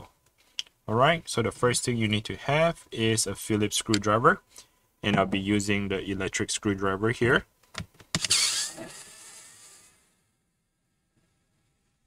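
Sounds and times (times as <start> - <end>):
electric screwdriver motor: 8.2 - 9.6.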